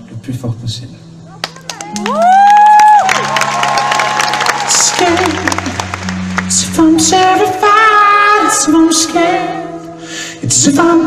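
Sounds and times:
audience cheering and singing: 0:01.9 - 0:08.7
acoustic guitar chords: 0:04.4 - 0:11.0.

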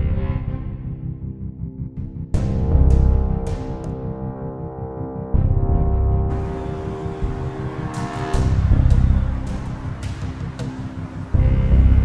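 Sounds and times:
film score sustained tones: 0:02.4 - 0:12.0
deep rumble: 0:05.3 - 0:12.0.

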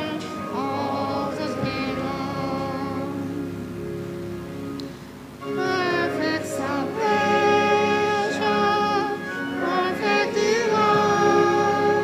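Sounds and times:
voices singing a hymn: 0:00.0 - 0:04.7, 0:05.4 - 0:12.0
instrumental accompaniment: 0:00.0 - 0:12.0.

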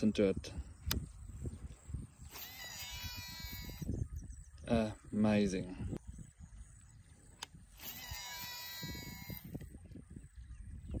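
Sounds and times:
fishing reel brake whine: 0:07.7 - 0:09.6.

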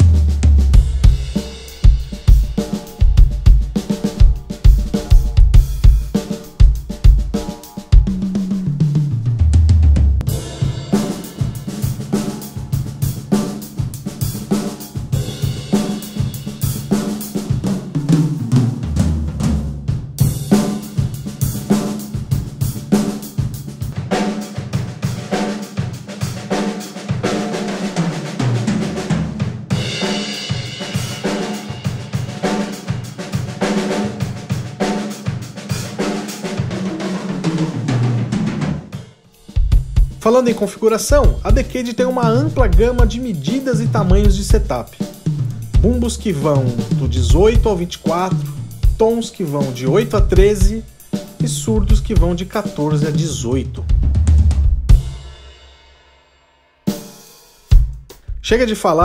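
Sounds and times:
drum kit groove: 0:00.0 - 0:59.0.

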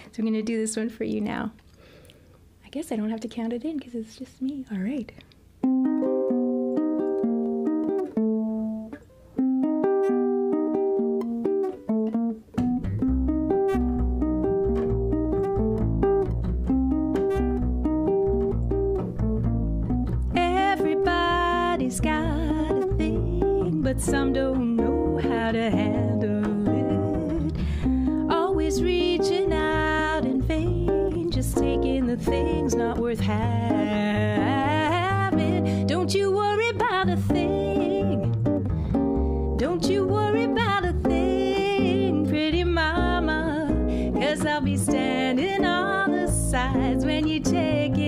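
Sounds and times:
plucked double bass line: 0:05.6 - 0:48.0
ukulele chord groove: 0:05.6 - 0:48.0.

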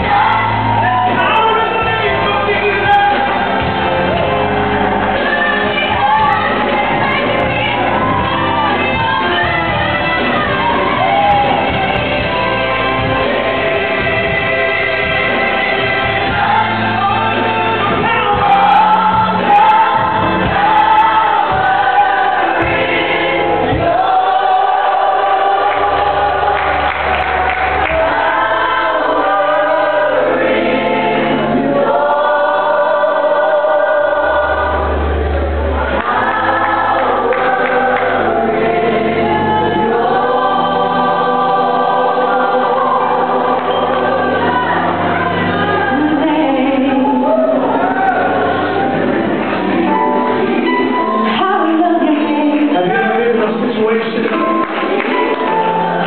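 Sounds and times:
low bass notes: 0:00.0 - 0:52.4
gospel choir singing: 0:00.0 - 0:56.0.

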